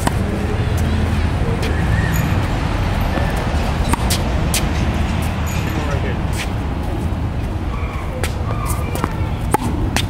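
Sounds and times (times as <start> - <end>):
tennis ball bouncing on court: 0.0 - 0.9, 3.1 - 4.8, 8.2 - 10.0.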